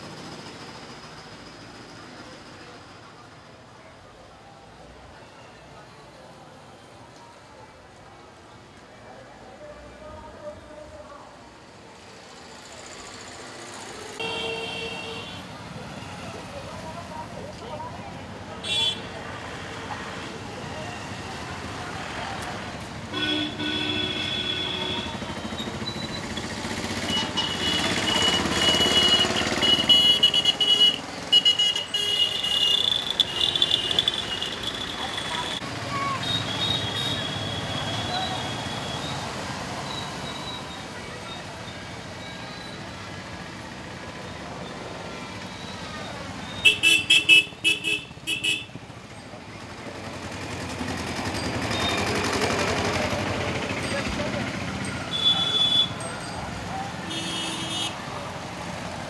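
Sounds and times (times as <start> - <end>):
traffic noise: 0.0 - 59.0
vehicle horns tooting: 14.2 - 16.1, 18.6 - 19.2, 23.1 - 39.2, 45.4 - 48.8, 54.9 - 56.2, 57.0 - 58.1.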